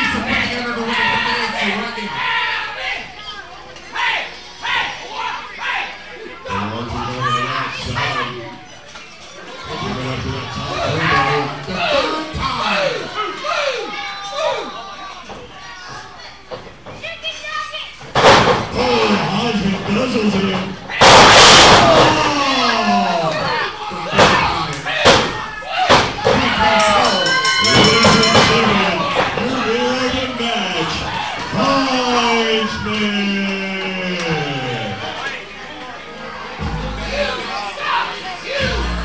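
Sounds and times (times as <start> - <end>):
crowd voices: 0.0 - 39.0
body crashing onto ring canvas: 21.0 - 22.2.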